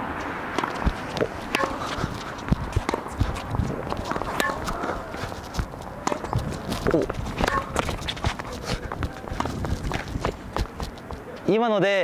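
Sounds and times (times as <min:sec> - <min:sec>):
running footsteps: 0:00.2 - 0:11.5
tennis shoes squeaking: 0:00.2 - 0:11.6
racket striking ball: 0:00.5 - 0:06.7, 0:07.3 - 0:08.4
ball bouncing: 0:00.5 - 0:11.2.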